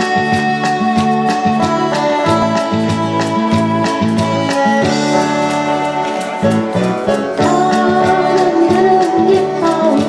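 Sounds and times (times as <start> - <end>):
acoustic guitars strumming: 0.0 - 10.0
held melody line: 0.0 - 10.0.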